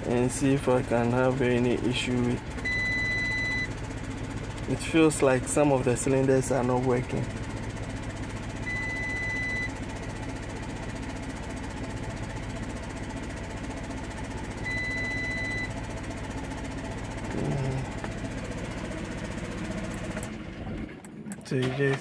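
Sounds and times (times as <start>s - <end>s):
car engine idling roughly: 0.0s - 22.0s
short electronic beeps: 2.7s - 3.7s, 8.7s - 9.7s, 14.7s - 15.7s.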